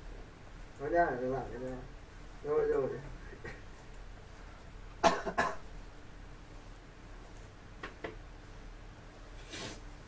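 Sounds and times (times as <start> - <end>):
person coughing: 5.0 - 5.7.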